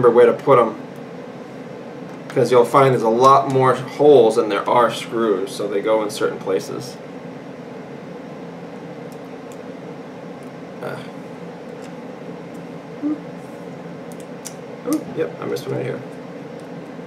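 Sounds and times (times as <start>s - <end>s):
steady room hum: 0.0s - 17.0s.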